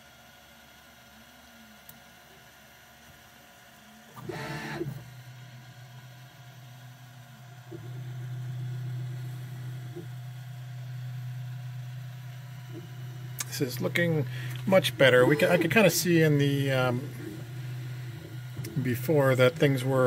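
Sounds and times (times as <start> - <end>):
printer stepper motors running: 1.4 - 20.0.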